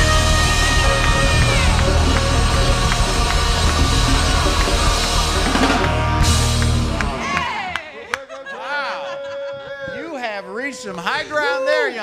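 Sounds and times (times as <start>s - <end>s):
drum kit: 0.0s - 7.7s
congas: 0.0s - 7.8s
electric guitar: 0.0s - 7.8s
keyboards: 0.0s - 7.8s
lead vocals: 0.0s - 10.1s.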